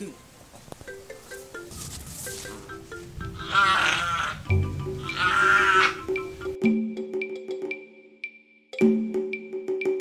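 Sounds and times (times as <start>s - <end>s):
animal calling with quavering pitch: 2.9s - 6.6s.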